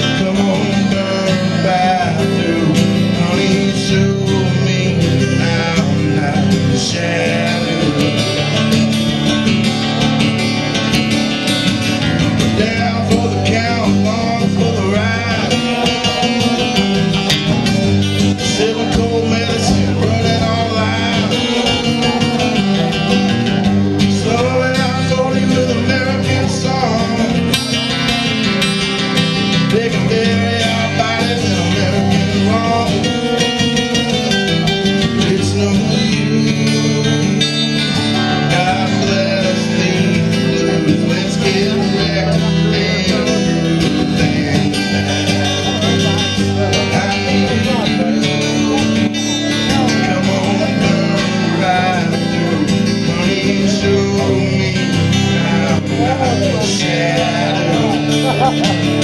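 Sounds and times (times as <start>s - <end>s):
live band playing guitar song: 0.0s - 59.0s.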